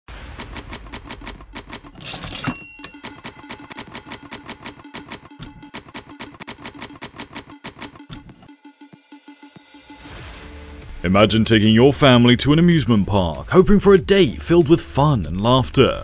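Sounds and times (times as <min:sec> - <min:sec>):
typewriter carriage rush: 0:00.3 - 0:08.0
typewriter keys striking: 0:00.3 - 0:08.2
typewriter bell ring: 0:00.4 - 0:08.0.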